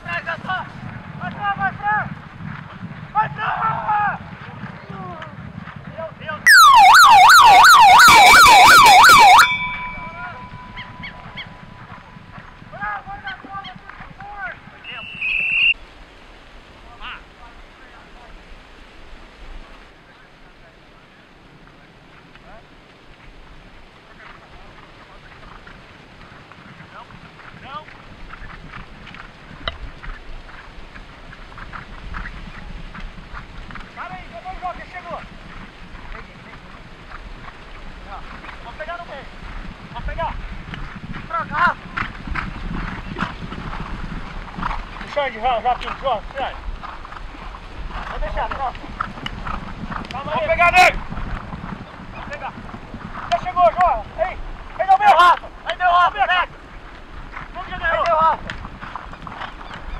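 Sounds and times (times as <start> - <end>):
electronic siren wailing: 6.5 - 11.7.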